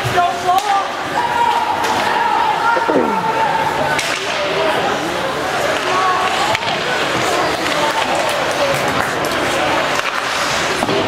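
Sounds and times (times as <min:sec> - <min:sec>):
voices: 0:01.5 - 0:08.1
hockey stick or puck crack: 0:04.0 - 0:04.5, 0:05.6 - 0:11.0.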